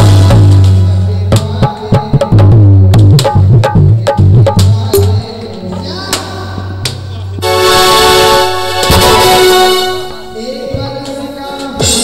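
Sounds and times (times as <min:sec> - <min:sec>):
loud horn-like tone: 0:07.4 - 0:10.7.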